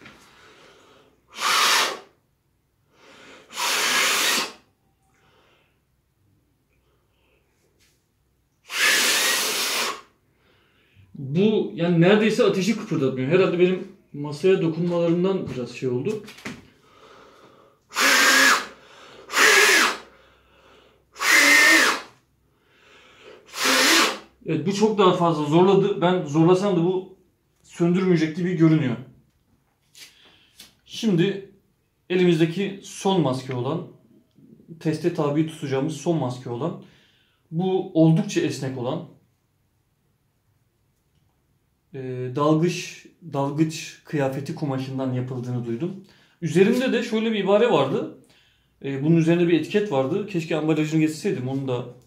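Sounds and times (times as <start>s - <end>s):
breath blowing through foam mask: 0.3s - 2.2s, 3.0s - 4.7s, 8.6s - 10.2s, 16.8s - 24.4s.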